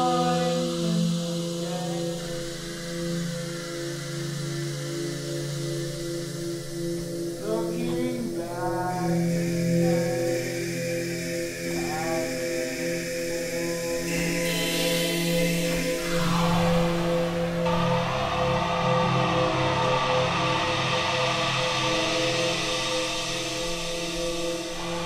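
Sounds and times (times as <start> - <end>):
gliding chant-like synth tones: 0.0 - 4.0, 7.3 - 22.2
low synth chord: 9.3 - 25.0.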